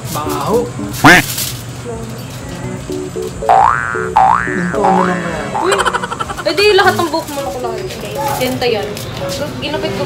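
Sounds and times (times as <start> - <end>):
light background music: 0.0 - 1.2, 2.6 - 7.0
cartoon boing: 3.4 - 6.5.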